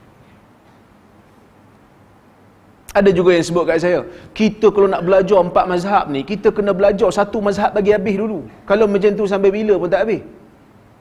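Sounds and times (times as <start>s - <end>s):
faint microphone hiss: 0.0s - 11.0s
man speaking: 2.9s - 10.4s.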